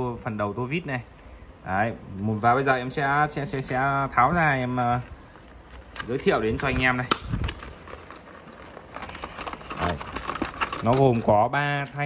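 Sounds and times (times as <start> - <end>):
plastic blister pack clicks and crinkles: 5.3 - 12.0.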